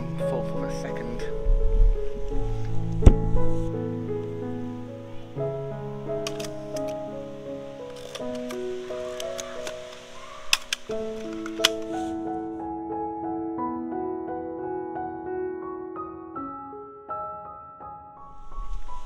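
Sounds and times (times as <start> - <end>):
slow piano-like background music: 0.0 - 19.0
camera mechanical clicks: 6.2 - 7.0, 7.9 - 12.0.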